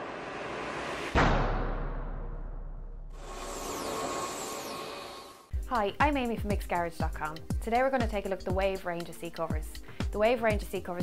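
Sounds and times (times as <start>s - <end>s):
hissing swell: 3.2s - 5.5s.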